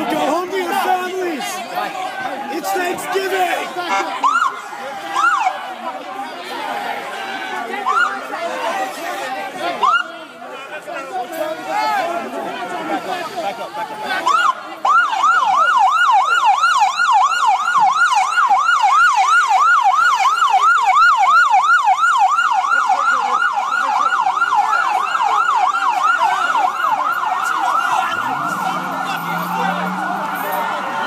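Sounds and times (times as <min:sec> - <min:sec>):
police siren yelping: 0:03.9 - 0:05.6, 0:07.8 - 0:08.3, 0:09.8 - 0:10.1, 0:14.1 - 0:31.0.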